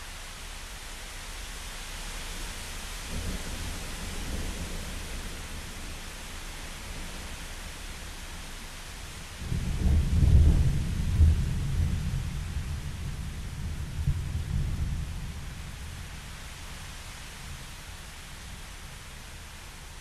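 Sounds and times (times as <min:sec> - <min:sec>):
steady rain hiss: 0:00.0 - 0:20.0
deep roll of thunder: 0:09.4 - 0:15.5.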